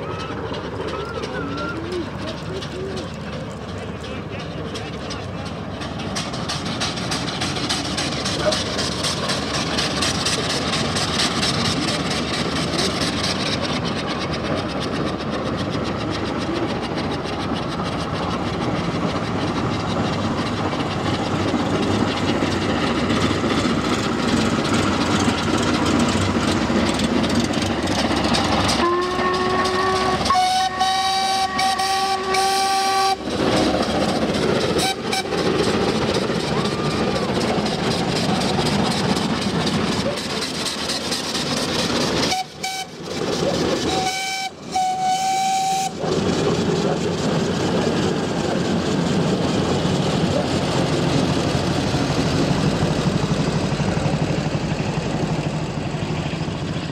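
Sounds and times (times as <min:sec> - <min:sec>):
steam locomotive passing: 0:00.0 - 0:56.9
steam whistle blasts: 0:28.8 - 0:33.2, 0:43.9 - 0:45.9.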